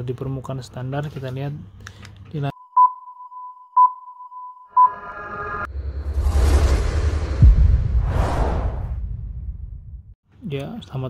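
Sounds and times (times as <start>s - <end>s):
high beep tone: 2.6s - 5.7s
whoosh over heavy bass: 5.6s - 10.2s
deep hit: 5.7s - 10.2s.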